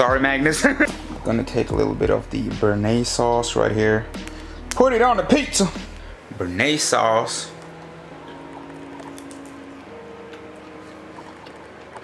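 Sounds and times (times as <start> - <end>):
chewing food: 7.6 - 12.0.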